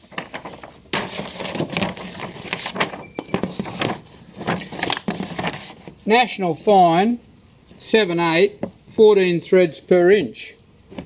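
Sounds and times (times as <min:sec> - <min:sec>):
pages flipping: 0:00.0 - 0:06.0
paper rustling and crackling: 0:00.0 - 0:06.0.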